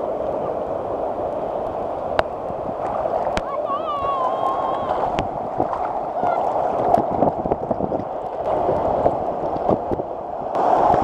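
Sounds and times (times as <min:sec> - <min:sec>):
ocean surf rushing: 0:00.0 - 0:11.0.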